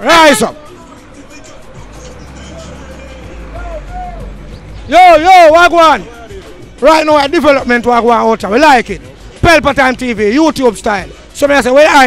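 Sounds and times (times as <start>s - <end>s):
low traffic rumble: 0.0s - 11.4s.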